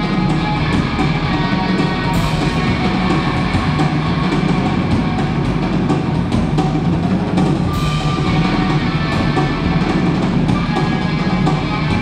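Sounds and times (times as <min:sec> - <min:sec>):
drum kit beat with cymbals: 0:00.0 - 0:12.0
electric guitar: 0:00.0 - 0:12.0.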